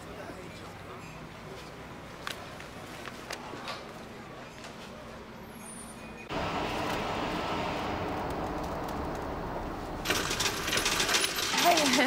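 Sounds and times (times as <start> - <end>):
buses idling: 6.2 - 12.0.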